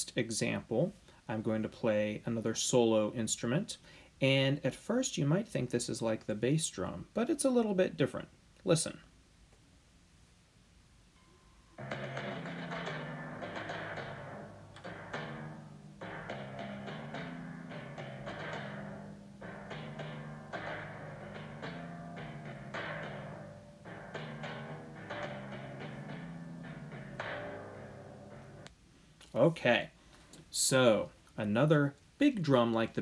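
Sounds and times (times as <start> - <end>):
timpani notes: 11.7 - 28.7.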